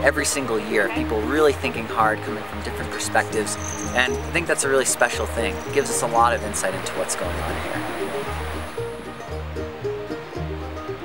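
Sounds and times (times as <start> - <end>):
sustained higher notes: 0.3 - 9.3.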